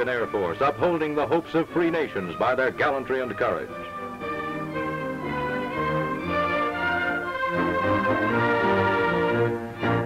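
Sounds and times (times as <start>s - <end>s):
orchestral string music: 0.0s - 10.0s.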